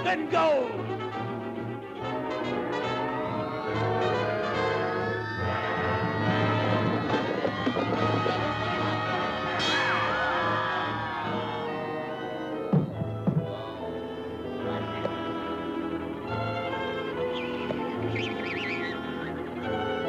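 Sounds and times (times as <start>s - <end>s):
orchestral cartoon music with brass: 0.0s - 20.0s.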